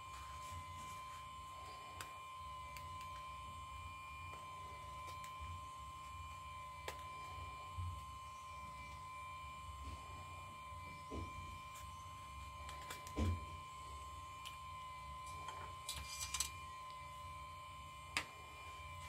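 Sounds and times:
faint electrical hum with whine: 0.0 - 19.0.

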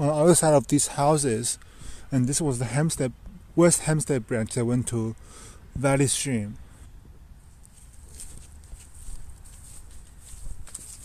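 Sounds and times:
footsteps on dry leaves: 7.5 - 11.0.

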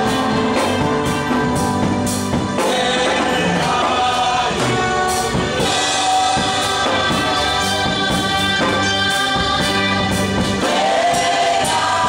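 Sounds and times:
gospel choir singing: 0.0 - 12.0.

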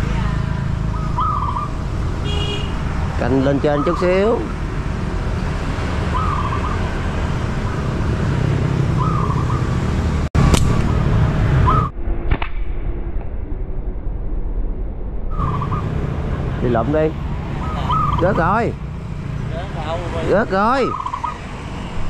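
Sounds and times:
steady low rumble: 10.3 - 17.5
slingshot snap: 10.5 - 10.9.

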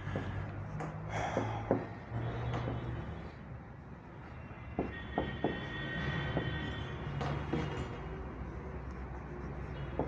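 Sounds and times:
marker squeaking on whiteboard: 4.4 - 10.0.

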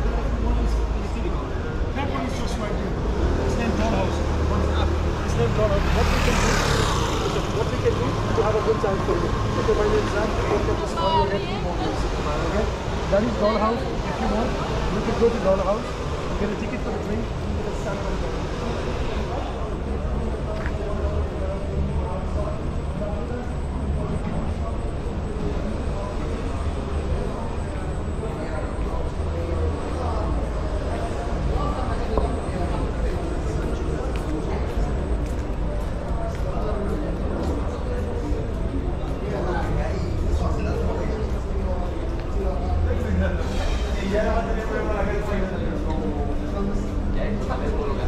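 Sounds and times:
faint indistinct voices: 0.0 - 48.0
low traffic rumble: 0.0 - 48.0
people talking: 0.0 - 48.0
vehicle passing: 2.8 - 11.0.

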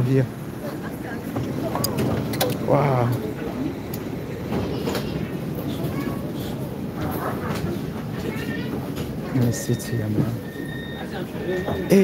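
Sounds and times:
faint passenger voices: 0.0 - 12.0
low hum of tram car: 0.0 - 12.0.

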